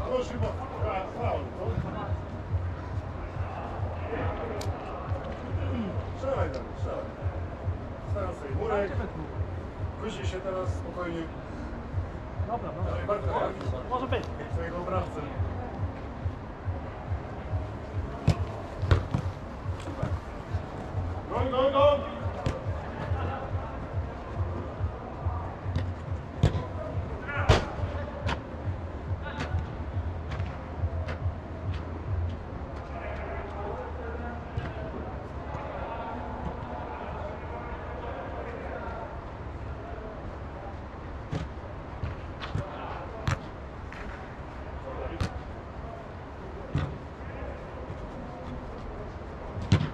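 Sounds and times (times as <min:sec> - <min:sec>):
steady low hum: 0:00.0 - 0:34.3
football kicks on artificial turf: 0:01.7 - 0:02.1, 0:18.0 - 0:23.4, 0:25.6 - 0:28.5, 0:41.3 - 0:44.1, 0:45.1 - 0:45.4, 0:46.7 - 0:47.0, 0:49.6 - 0:49.9
distant players shouting: 0:20.9 - 0:28.6.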